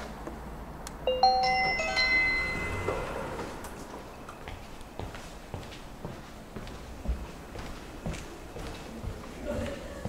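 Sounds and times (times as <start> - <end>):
electronic unlock chime: 1.1 - 3.3.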